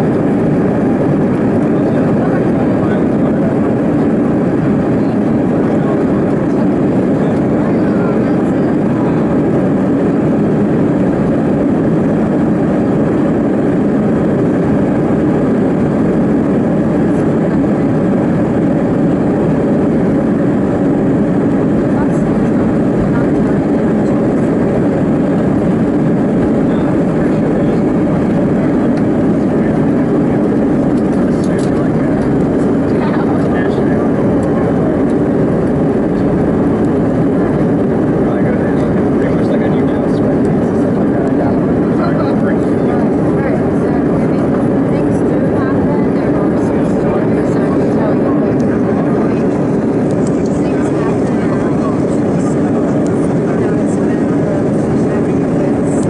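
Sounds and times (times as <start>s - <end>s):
jet engines at takeoff: 0.0s - 56.0s.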